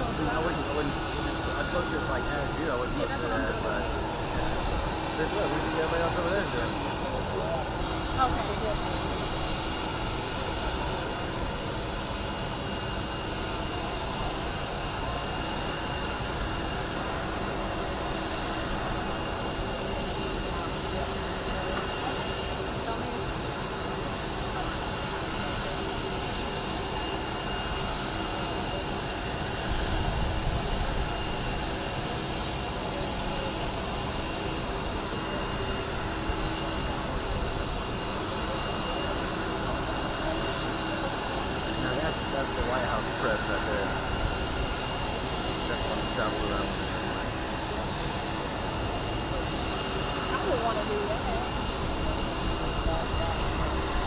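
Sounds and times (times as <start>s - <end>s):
jet turbine whine: 0.0s - 54.0s.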